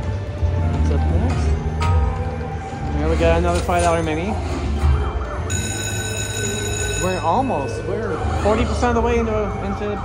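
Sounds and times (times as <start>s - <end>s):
high siren-like ringing tone: 4.9s - 10.0s.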